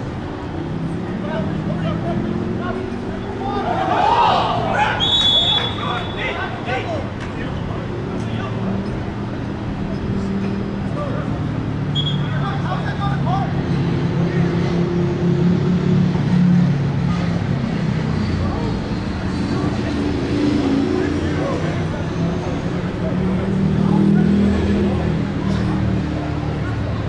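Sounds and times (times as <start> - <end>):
vehicle engine hum: 0.0 - 27.0
distant players shouting: 1.2 - 8.8.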